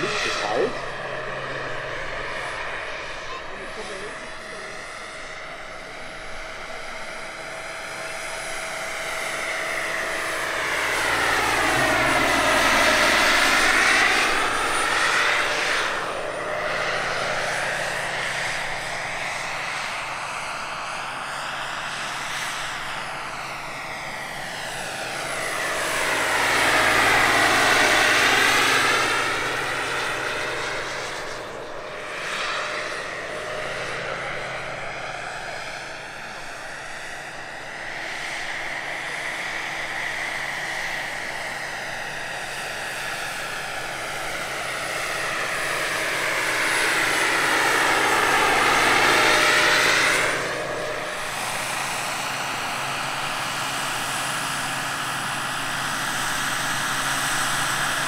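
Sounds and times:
gas turbine whine: 0:00.0 - 0:58.0
helicopter rotor noise: 0:00.0 - 0:58.0.

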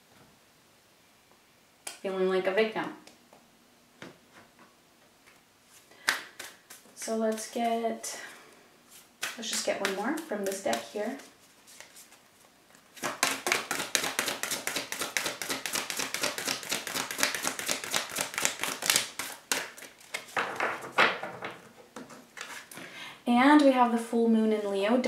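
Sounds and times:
cards being shuffled: 0:08.9 - 0:22.7.

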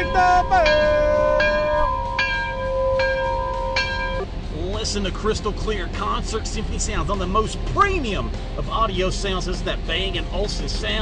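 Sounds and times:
bell ringing: 0:00.0 - 0:04.2.

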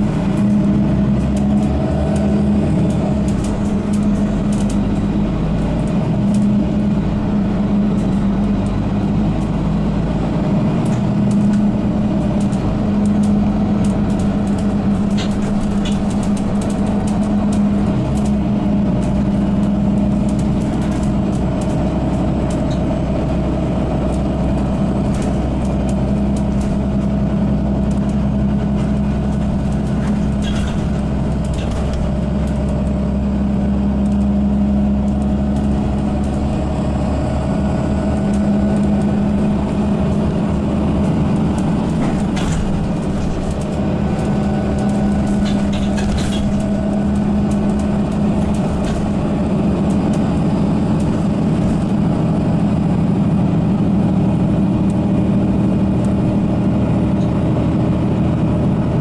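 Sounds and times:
bus engine and drivetrain drone: 0:00.0 - 0:59.0
road noise: 0:00.0 - 0:59.0.

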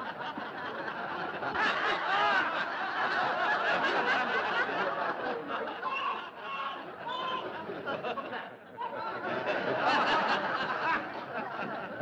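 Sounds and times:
audience laughing: 0:00.0 - 0:12.0.

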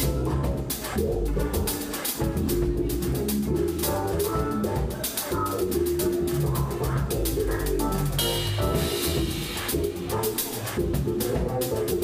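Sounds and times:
drum kit groove: 0:00.0 - 0:12.0
funk band playing: 0:00.0 - 0:12.0
upright bass with envelope filter: 0:00.0 - 0:12.0.

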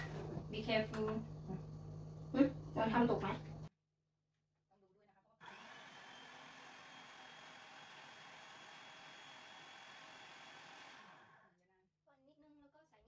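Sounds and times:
food processor motor whirring: 0:00.0 - 0:03.7, 0:05.4 - 0:11.5.

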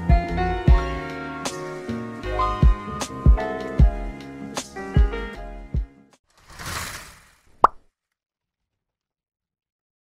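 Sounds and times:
sharp pop: 0:07.6 - 0:07.8.

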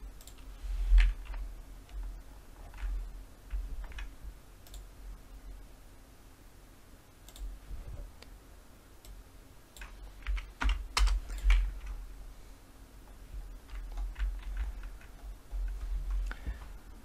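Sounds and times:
faint low hum: 0:00.0 - 0:17.0
keyboard and mouse clicks: 0:00.1 - 0:04.9, 0:07.3 - 0:07.6, 0:09.0 - 0:12.0, 0:13.1 - 0:16.8.

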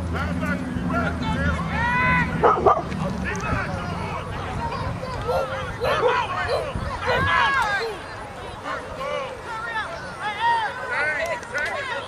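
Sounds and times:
people shouting: 0:01.2 - 0:02.6, 0:04.0 - 0:12.0.

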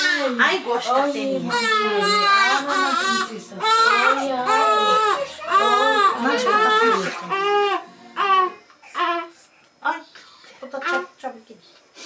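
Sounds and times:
baby crying: 0:00.0 - 0:00.4, 0:01.2 - 0:09.4.

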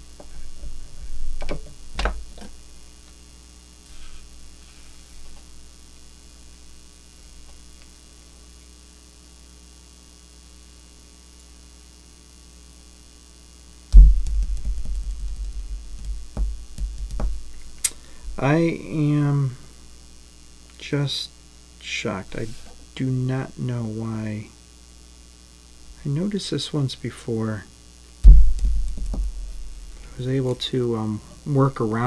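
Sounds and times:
low mains hum: 0:00.0 - 0:32.0
low thump: 0:13.9 - 0:17.6, 0:28.2 - 0:30.1
vise clicks: 0:13.9 - 0:18.6
rumbling knocks: 0:13.9 - 0:18.8, 0:28.2 - 0:30.2.

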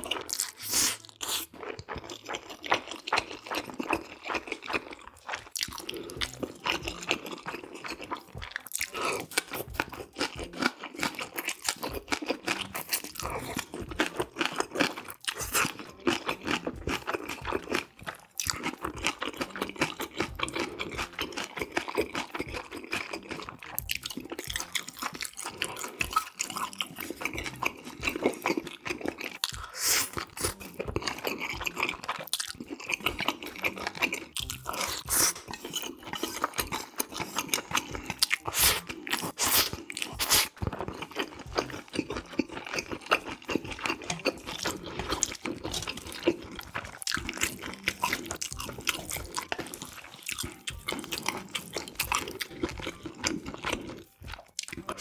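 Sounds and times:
person chewing and crunching: 0:00.0 - 0:55.0.

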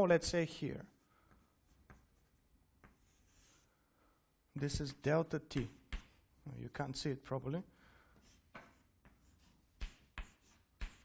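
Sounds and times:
writing implement tapping on board: 0:05.5 - 0:06.2, 0:09.8 - 0:11.0.

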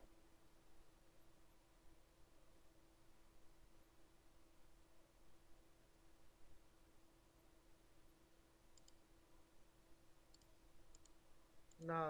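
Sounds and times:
faint steady hum: 0:00.0 - 0:12.0
computer mouse clicks: 0:08.7 - 0:09.0, 0:10.3 - 0:12.0.

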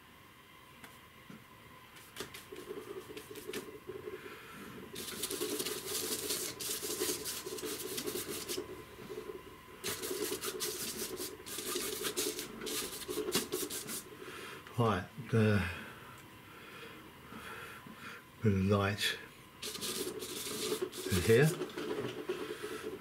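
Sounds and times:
bristle brush scrubbing paper: 0:05.0 - 0:08.7, 0:09.8 - 0:14.1, 0:19.6 - 0:21.6.

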